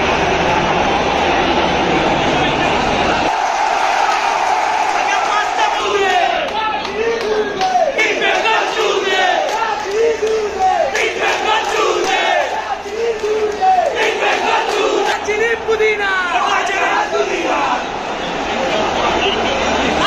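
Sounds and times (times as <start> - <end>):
stadium crowd chanting: 0.0 - 20.0.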